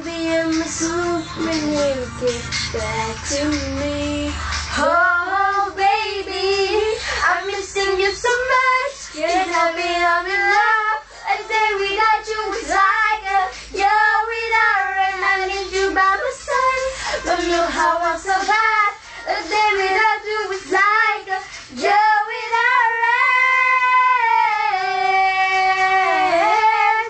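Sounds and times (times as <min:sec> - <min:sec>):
girls singing pop song: 0:00.0 - 0:27.0.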